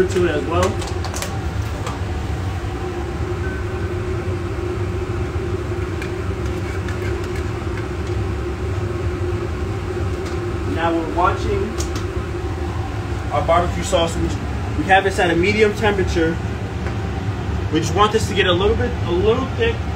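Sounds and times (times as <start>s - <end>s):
ventilation hum: 0.0s - 19.9s.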